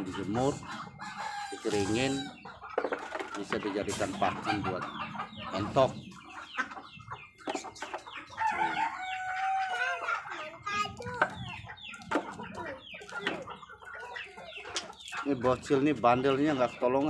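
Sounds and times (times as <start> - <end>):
chickens clucking: 0.0 - 17.0
rooster crowing: 8.4 - 10.0.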